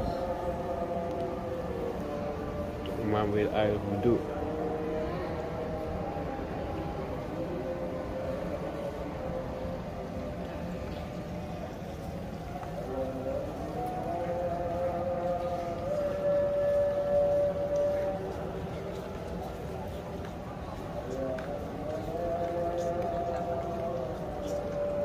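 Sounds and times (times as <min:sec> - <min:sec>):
voice chanting: 0:00.0 - 0:25.0.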